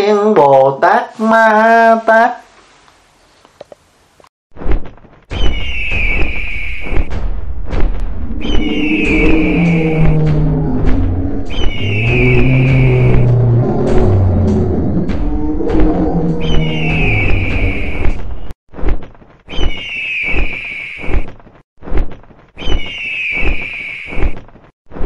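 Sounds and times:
sharp hits: 5.3 - 18.6
heavy bass-laden music: 7.1 - 18.5
high falling sound effect: 8.0 - 18.5.

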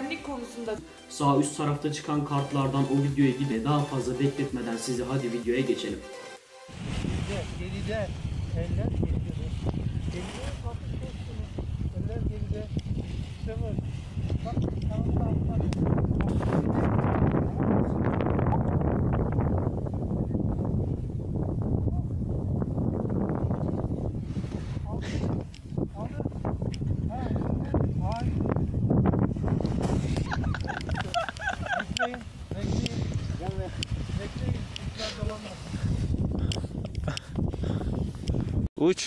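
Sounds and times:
wind buffeting microphone: 6.7 - 38.7.

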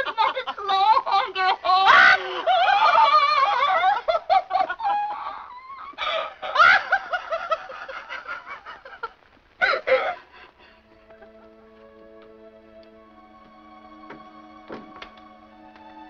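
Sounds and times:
woman laughing: 0.0 - 10.3
woman sobbing: 0.0 - 11.8.

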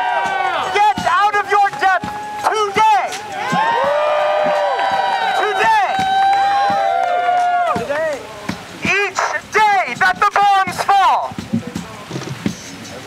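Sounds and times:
person shouting through megaphone: 0.6 - 3.2, 8.9 - 11.3.

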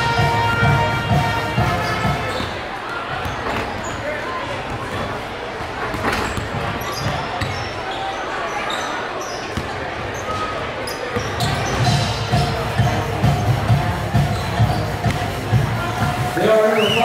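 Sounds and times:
crowd murmur: 0.0 - 17.0
basketballs bouncing on hardwood floor: 5.9 - 7.7.

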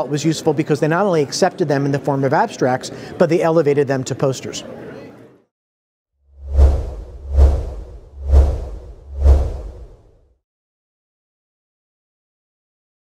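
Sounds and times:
whoosh sound effects: 6.4 - 10.2.

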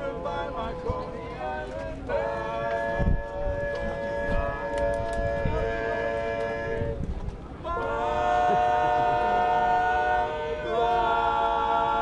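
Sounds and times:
men singing in close harmony: 0.0 - 7.0, 7.7 - 12.0.

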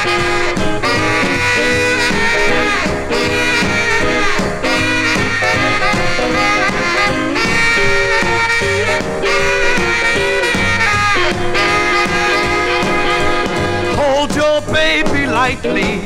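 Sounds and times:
rock and roll horns over beat: 0.0 - 16.0.

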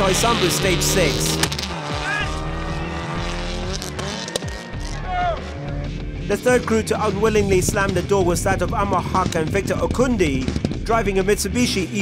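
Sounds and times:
rally car engine at high revs: 0.0 - 6.5
background music: 0.0 - 12.0.

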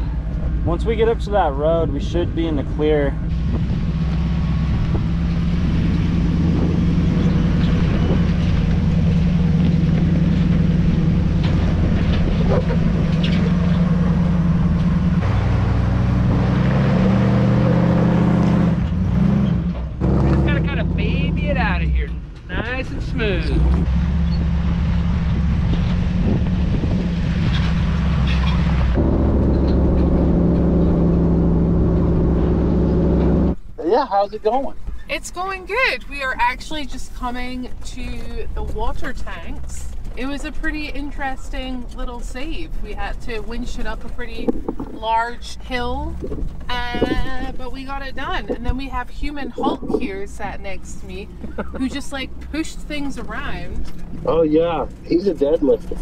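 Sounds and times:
truck engine running at low revs: 0.0 - 35.2, 36.3 - 56.0.

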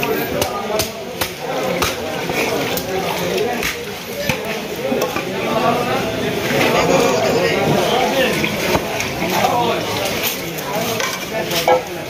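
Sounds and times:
crackling market noise: 0.0 - 12.0
faint voices: 0.0 - 12.0.

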